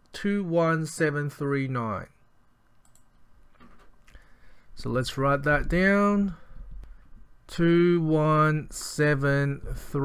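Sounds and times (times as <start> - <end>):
faint clicks: 2.8 - 4.3.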